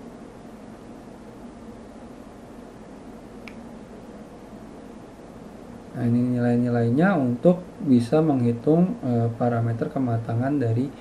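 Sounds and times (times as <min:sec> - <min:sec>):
low room hum: 0:00.0 - 0:11.0
microphone hiss: 0:00.0 - 0:11.0.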